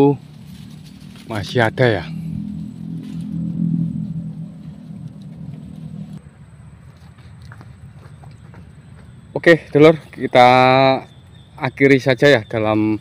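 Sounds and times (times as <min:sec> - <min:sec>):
passing vehicle engine rumble: 0:00.0 - 0:13.0.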